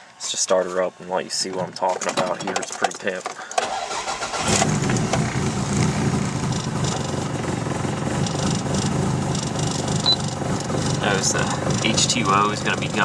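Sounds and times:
car engine idling: 3.6 - 13.0.

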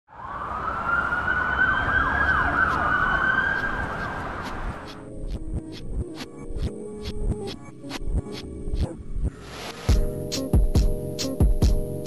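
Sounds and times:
emergency vehicle siren wailing: 0.1 - 4.8
low city rumble: 0.1 - 6.0.

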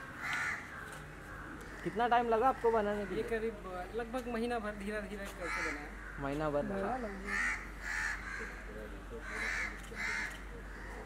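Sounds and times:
crow cawing: 0.2 - 3.6, 5.2 - 11.0.

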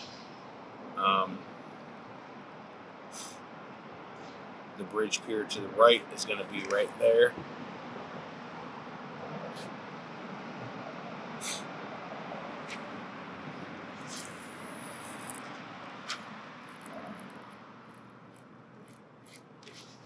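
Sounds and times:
steady rushing noise: 0.0 - 20.0.

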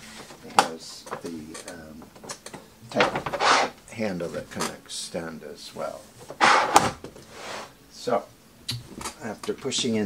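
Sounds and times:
plastic case scraping on table: 6.4 - 7.7.

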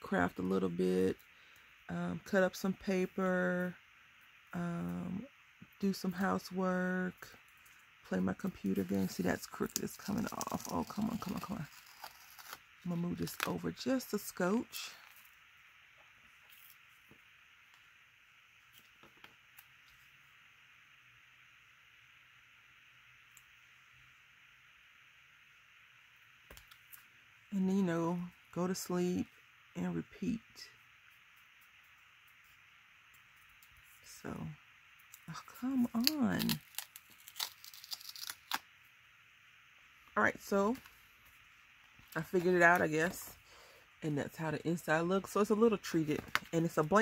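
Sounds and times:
faint room hiss: 0.0 - 47.0
adhesive strip peeling off card: 11.0 - 12.6, 36.0 - 38.6.

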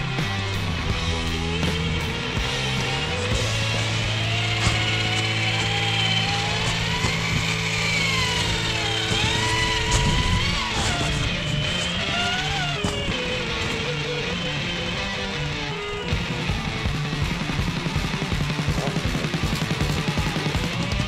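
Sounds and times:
rock music: 0.0 - 21.0
toy truck electric motor whine: 0.7 - 21.0.

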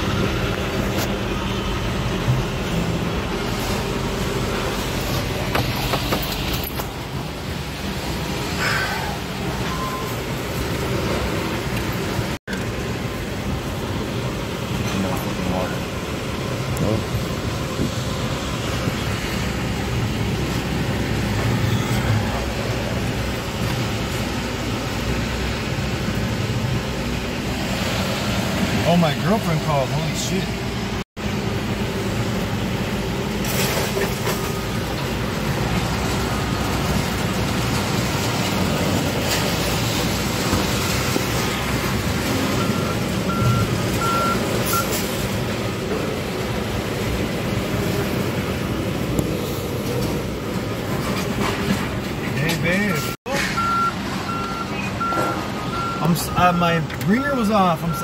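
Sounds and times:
heavy equipment engines running: 0.0 - 58.0
backup alarm beeping: 9.6 - 10.3, 42.6 - 44.9, 52.8 - 56.8, 57.4 - 58.0.

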